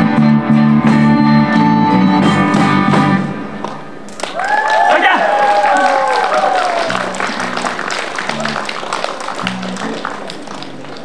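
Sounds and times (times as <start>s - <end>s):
low guitar notes: 0.0s - 4.1s
audience applause: 4.1s - 11.0s.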